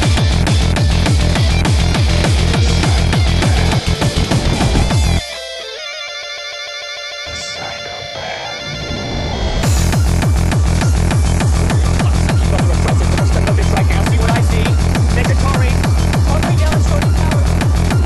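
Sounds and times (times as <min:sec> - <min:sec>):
distorted kick drums: 0:00.0 - 0:05.3, 0:09.6 - 0:18.0
synth tones: 0:00.9 - 0:18.0.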